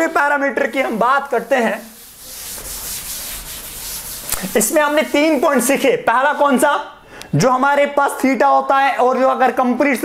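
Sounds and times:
cloth rubbing on chalkboard: 0:00.6 - 0:06.0.

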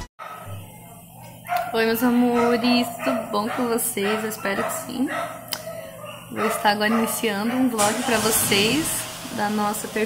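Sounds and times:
woman speaking: 0:01.6 - 0:05.7, 0:06.3 - 0:10.0.

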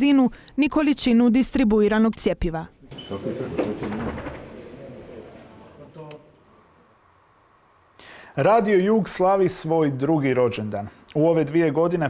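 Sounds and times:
muffled voices in a room: 0:02.7 - 0:12.0.

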